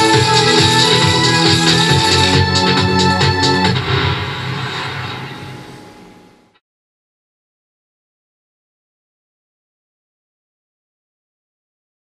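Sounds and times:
slot machine low hum: 0.0s - 6.4s
steady rushing noise: 0.0s - 6.6s.

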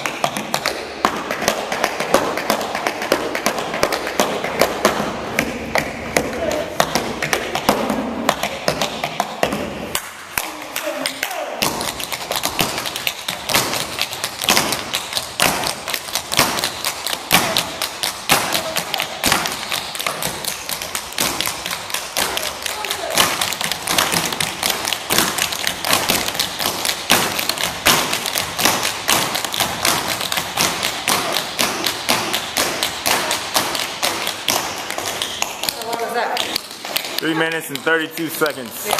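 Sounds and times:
tap shoes on wooden floor: 0.0s - 10.1s, 11.2s - 38.9s.

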